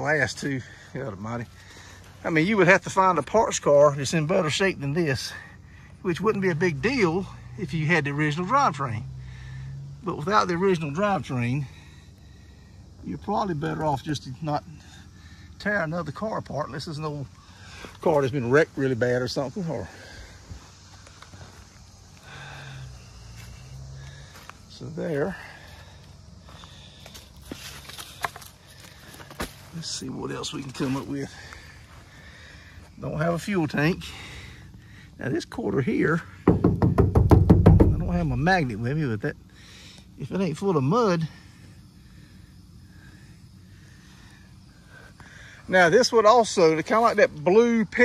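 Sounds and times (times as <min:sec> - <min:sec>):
footsteps crunching on leaf litter: 0:25.7 - 0:32.1.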